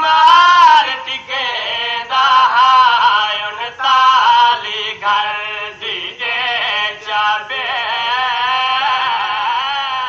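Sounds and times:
person chanting mourning lament: 0:00.0 - 0:10.0.

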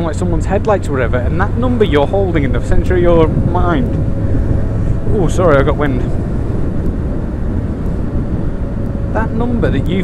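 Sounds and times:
wind rush on moving motorcycle: 0:00.0 - 0:10.0.

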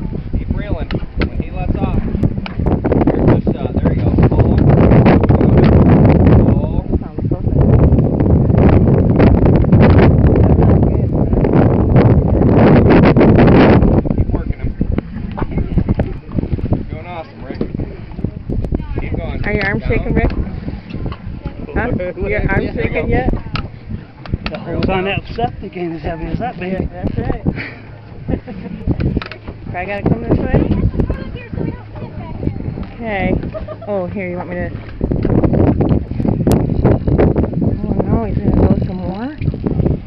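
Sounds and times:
wind rumble on microphone: 0:00.0 - 0:40.0
indistinct voices: 0:14.0 - 0:35.0, 0:37.6 - 0:39.7.

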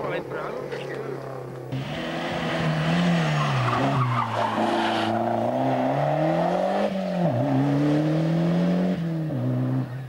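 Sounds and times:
car engine passing at speed: 0:01.7 - 0:10.0.

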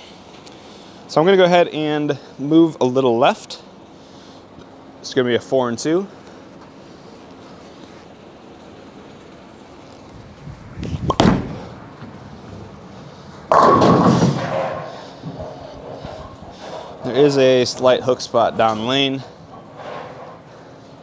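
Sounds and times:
bowling ball thud on lane: 0:11.1 - 0:11.6, 0:13.5 - 0:14.8
bowling pins crashing: 0:13.5 - 0:15.5.

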